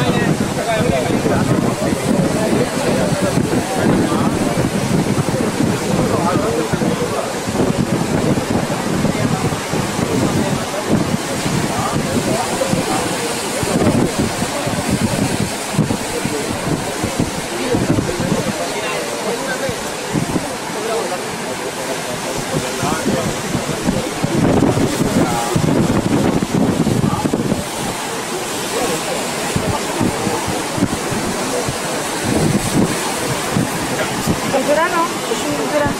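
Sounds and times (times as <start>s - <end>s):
background voices: 0.0s - 35.9s
surf breaking on rocks: 0.0s - 35.9s
wind on microphone: 0.0s - 35.9s.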